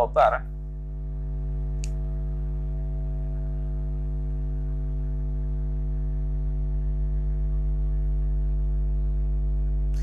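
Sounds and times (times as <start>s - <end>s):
buzzy electrical mains hum: 0.0s - 10.0s.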